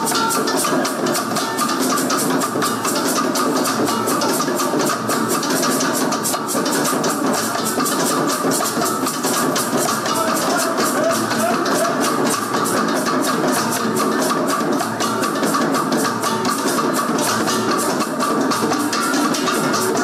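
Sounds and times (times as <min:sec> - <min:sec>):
hand drums fast beat: 0:00.0 - 0:20.0.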